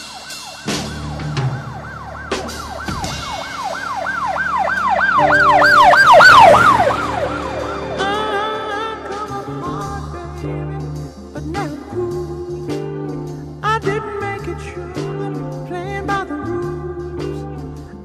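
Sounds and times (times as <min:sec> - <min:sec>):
yelping siren sound effect: 0:00.0 - 0:09.2
drum hits: 0:00.0 - 0:09.4
held music chords: 0:00.0 - 0:13.6.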